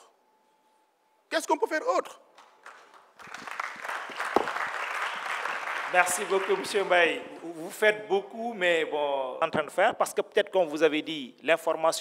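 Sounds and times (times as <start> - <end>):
audience applause: 2.6 - 7.0.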